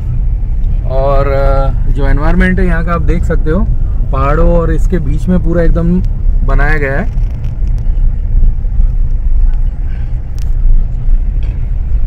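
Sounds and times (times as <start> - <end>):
car road rumble on dirt road: 0.0 - 12.0.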